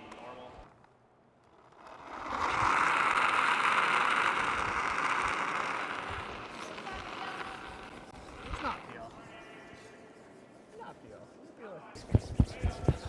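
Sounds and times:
brooms sweeping ice: 0:01.7 - 0:11.8.

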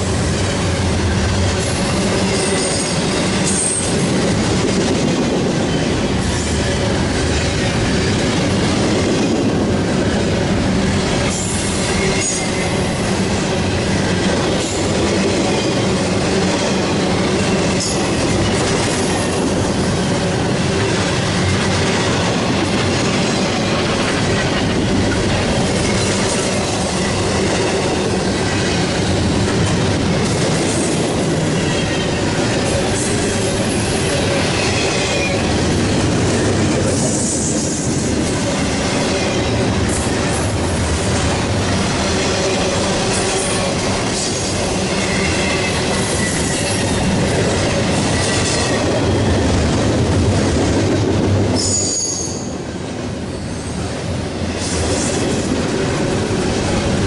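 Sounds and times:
freight train wheels clattering: 0:00.0 - 0:53.0
wheel squeal: 0:45.0 - 0:47.0, 0:51.6 - 0:52.6.

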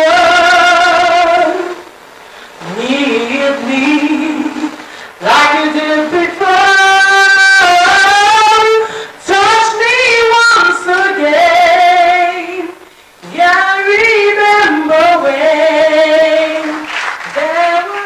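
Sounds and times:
woman singing slow song: 0:00.0 - 0:18.0
singer breathing: 0:02.2 - 0:02.6, 0:04.8 - 0:05.2, 0:08.8 - 0:09.2, 0:12.8 - 0:13.2.

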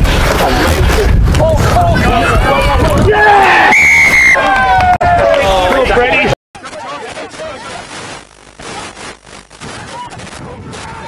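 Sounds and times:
rough irregular crackling: 0:07.2 - 0:11.0.

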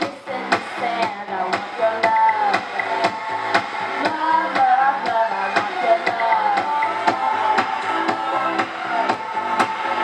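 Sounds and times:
woman singing into a microphone: 0:00.0 - 0:03.2, 0:04.0 - 0:07.7
pop backing track with guitar: 0:00.0 - 0:10.0.

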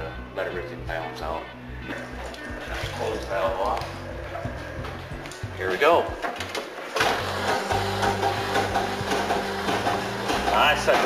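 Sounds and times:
test pump humming: 0:07.0 - 0:11.0.

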